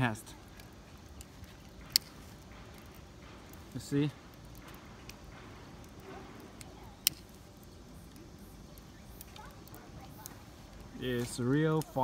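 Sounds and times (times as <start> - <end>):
faint voices: 3.4 - 12.0.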